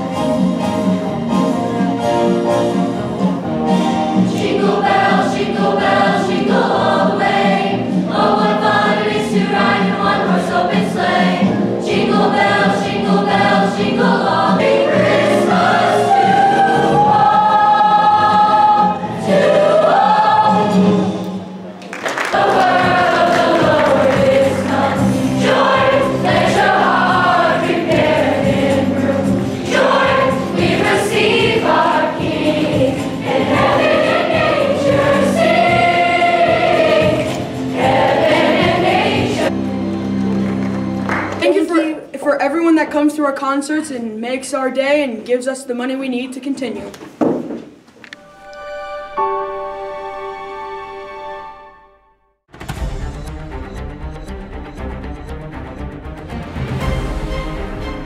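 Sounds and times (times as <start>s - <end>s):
choir singing: 4.2s - 39.8s.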